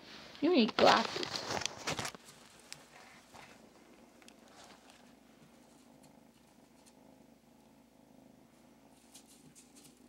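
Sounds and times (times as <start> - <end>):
kitten purring: 0.4 - 10.0
faint light ticks: 4.2 - 5.0.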